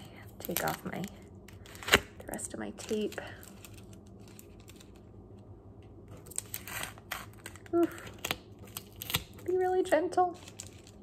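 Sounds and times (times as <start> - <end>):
tape and paper rustling: 0.4 - 5.1, 6.1 - 11.0.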